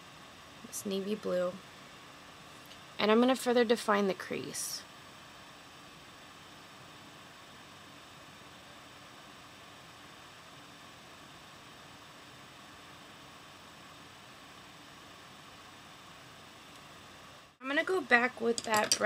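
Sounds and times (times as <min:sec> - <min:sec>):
faint room tone hiss: 0:00.0 - 0:19.0.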